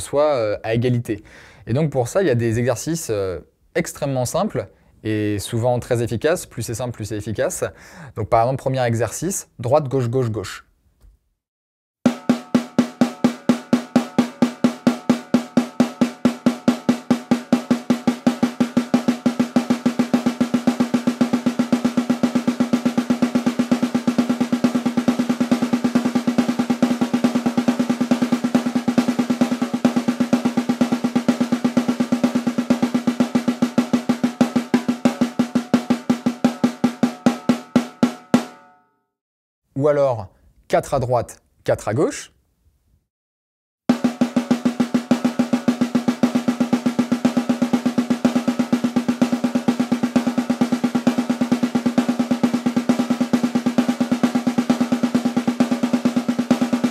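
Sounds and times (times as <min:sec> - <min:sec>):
snare drum single strokes: 0:12.1 - 0:38.6, 0:43.9 - 0:56.9.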